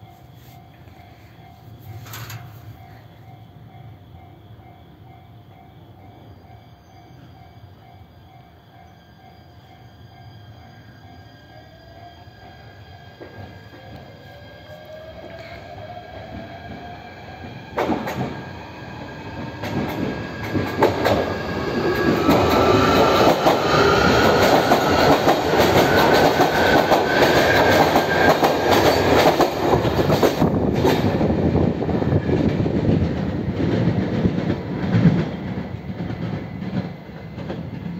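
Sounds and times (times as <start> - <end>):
clicking rail joints: 1.9 - 2.9.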